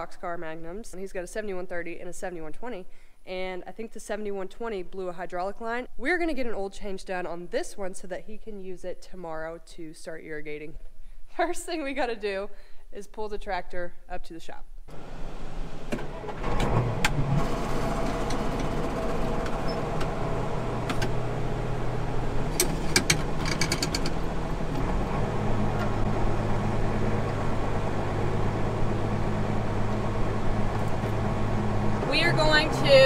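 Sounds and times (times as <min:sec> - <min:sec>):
tractor diesel engine running: 0:14.9 - 0:33.0.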